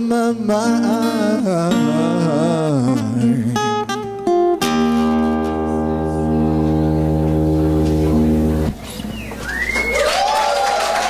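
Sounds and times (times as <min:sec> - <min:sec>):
whistle: 0:08.9 - 0:10.2
audience cheering: 0:09.2 - 0:11.0
scattered clapping: 0:09.4 - 0:11.0.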